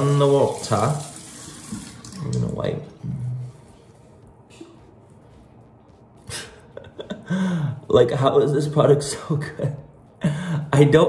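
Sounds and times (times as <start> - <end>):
person laughing: 6.3 - 7.9.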